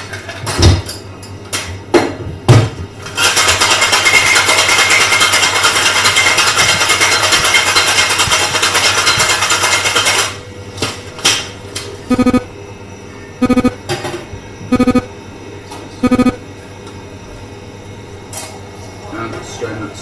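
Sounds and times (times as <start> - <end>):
ice rattling in cocktail shaker: 3.2 - 10.2.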